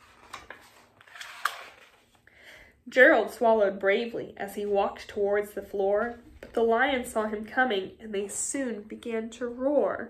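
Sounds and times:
book page turning: 0.0s - 2.2s.

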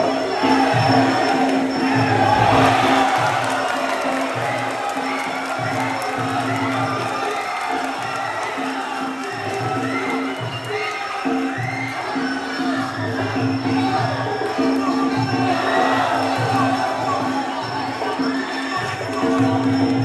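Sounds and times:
crowd cheering and shouting: 0.0s - 20.0s
drums and small cymbals: 0.0s - 20.0s.

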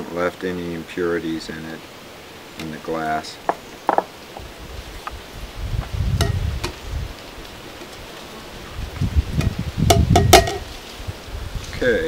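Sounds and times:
wind rumble on microphone: 4.4s - 7.6s, 8.6s - 12.0s
plastic cup knocking glass jar: 9.4s - 10.6s.

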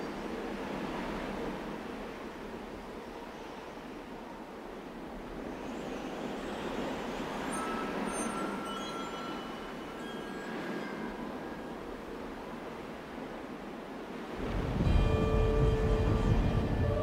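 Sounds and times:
thin high held tones: 7.4s - 11.8s.

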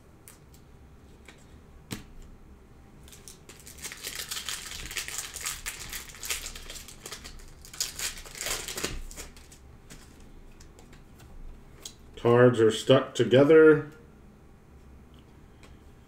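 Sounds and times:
handling of cards: 3.0s - 12.0s
foil wrapper crinkling and tearing: 3.1s - 10.1s.

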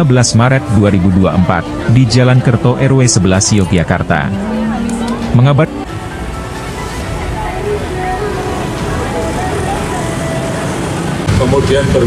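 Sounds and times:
faint voices: 0.0s - 12.0s
road traffic rumble: 0.0s - 12.0s.

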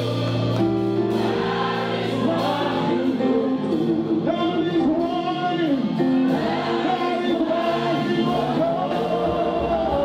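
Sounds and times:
choir voices: 0.0s - 10.0s
held backing chords: 0.0s - 10.0s
man singing into a microphone: 6.8s - 10.0s.

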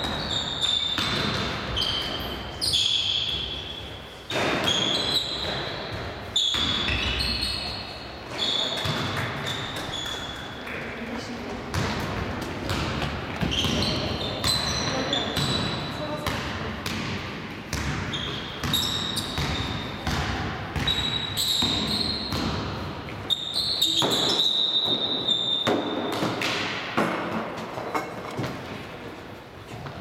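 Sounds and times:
sneakers squeaking: 0.0s - 10.9s, 11.7s - 17.1s, 17.7s - 26.8s
basketball bouncing: 1.0s - 2.1s, 8.8s - 9.9s, 11.7s - 22.8s.

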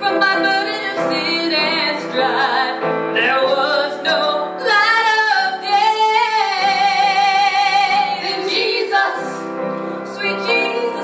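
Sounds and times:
women singing gospel song: 0.0s - 11.0s.

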